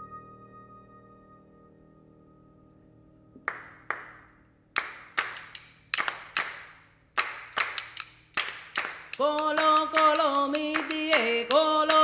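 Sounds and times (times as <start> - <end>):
grand piano chord: 0.0 - 3.6
people clapping in rhythm: 3.5 - 12.0.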